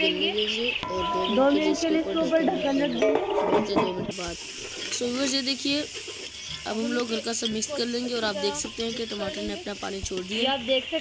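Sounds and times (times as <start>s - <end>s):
vegetables sizzling in hot oil: 4.0s - 11.0s.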